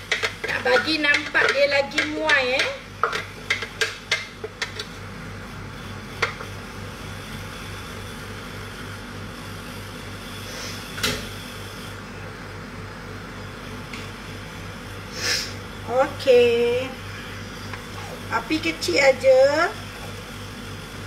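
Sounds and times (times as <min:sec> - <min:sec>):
extractor fan humming: 0:00.0 - 0:21.0.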